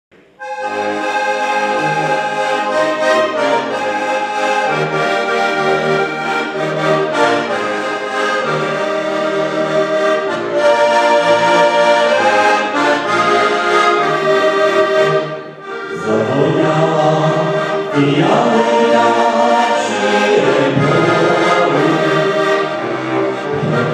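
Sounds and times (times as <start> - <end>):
button accordions playing folk tune: 0.3 - 23.9.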